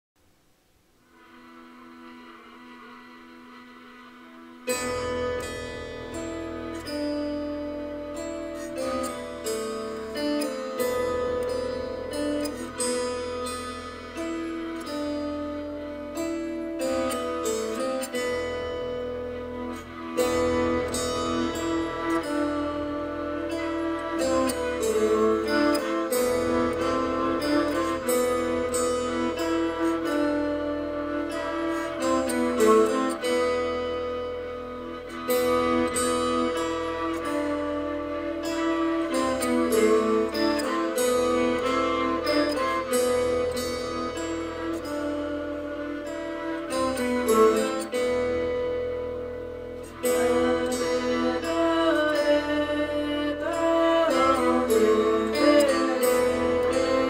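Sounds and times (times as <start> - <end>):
bowed lyre tone: 1.0 - 57.0.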